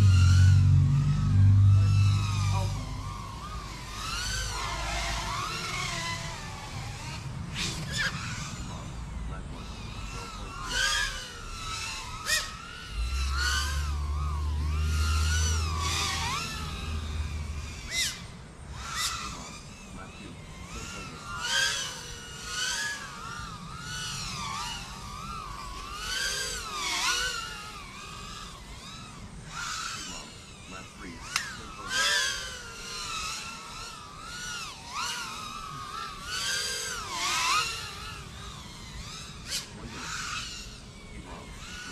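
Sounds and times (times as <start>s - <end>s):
low steady hum: 0.0s - 41.9s
quadcopter motors whining: 0.0s - 41.9s.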